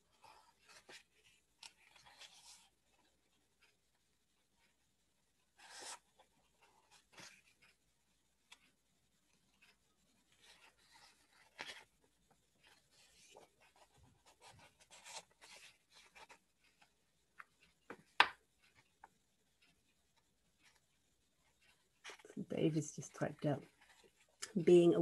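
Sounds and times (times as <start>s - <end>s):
small clicks and rustles: 0.1s - 24.9s.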